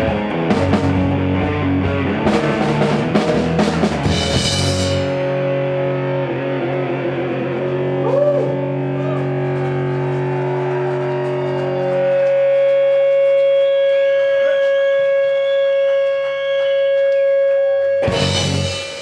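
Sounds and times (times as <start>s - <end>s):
distorted electric guitar note: 0.0s - 19.0s
drums: 0.0s - 19.0s
loud drum and cymbal hit: 2.2s - 5.3s, 18.0s - 19.0s.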